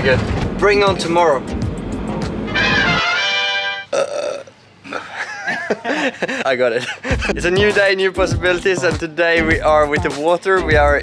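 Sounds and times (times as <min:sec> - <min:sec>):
man burping: 0:03.8 - 0:05.3.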